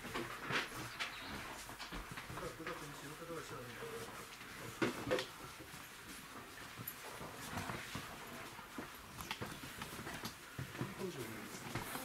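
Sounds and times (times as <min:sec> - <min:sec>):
clothing rustle: 0:00.0 - 0:12.0
shuffling footsteps: 0:00.0 - 0:12.0.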